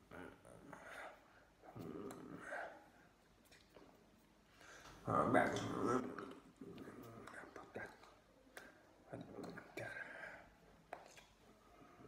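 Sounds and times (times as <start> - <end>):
man whispering: 0.0 - 4.0, 4.8 - 12.0.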